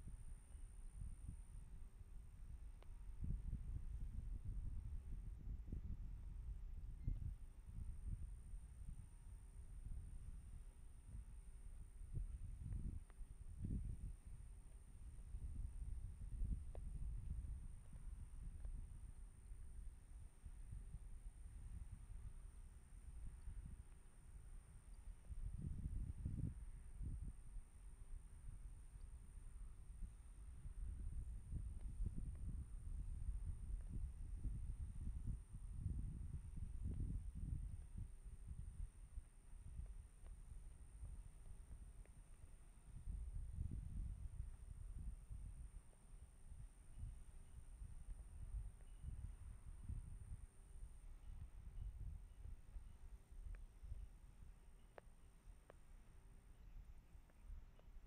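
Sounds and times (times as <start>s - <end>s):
faint high-pitched whine: 0.0s - 58.0s.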